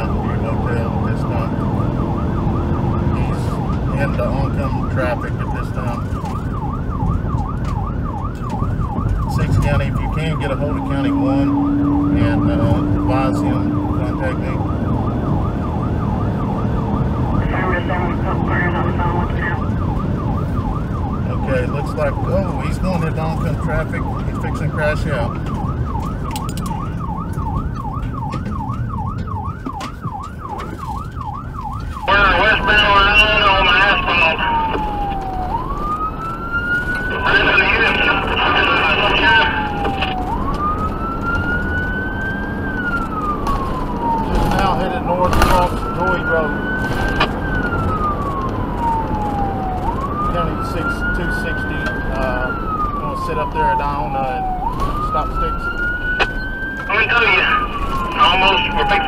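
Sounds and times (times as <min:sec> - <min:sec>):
harsh high siren bursts: 0:00.0 - 0:59.0
police siren: 0:00.0 - 0:59.0
road noise: 0:00.0 - 0:59.0.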